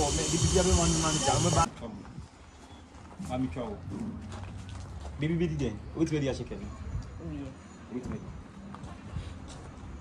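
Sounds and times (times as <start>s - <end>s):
steady high hiss: 0.0s - 1.7s
people talking: 0.0s - 2.0s.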